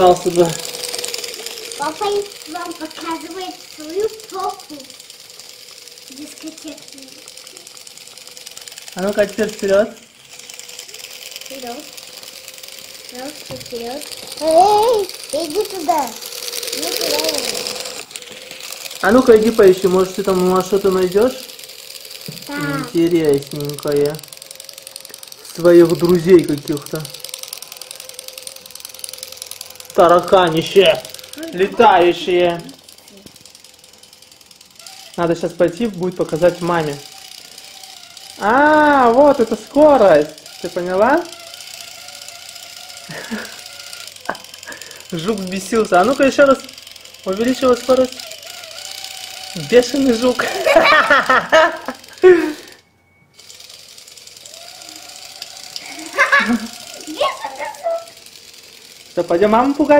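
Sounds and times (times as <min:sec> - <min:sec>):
toy robot clattering on tiles: 0:00.0 - 0:52.8, 0:53.4 - 0:59.9.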